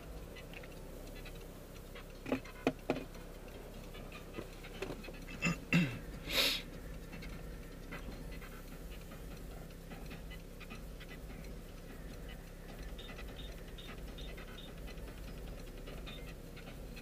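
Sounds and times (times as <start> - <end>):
engine and road hum: 0.0 - 17.0
turn signal ticking: 0.0 - 17.0.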